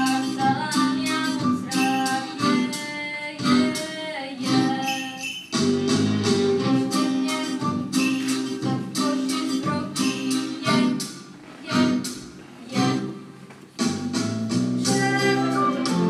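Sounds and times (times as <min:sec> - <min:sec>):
instrumental stage music: 0:00.0 - 0:16.0.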